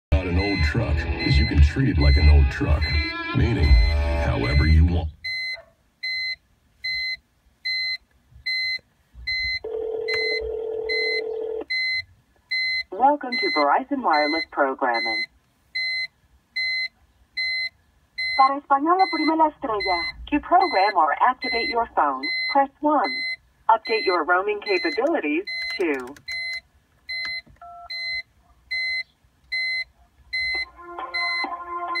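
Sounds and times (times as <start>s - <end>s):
short electronic beeps: 0.2s - 32.0s
phone ringback tone: 7.7s - 12.0s, 30.4s - 32.0s.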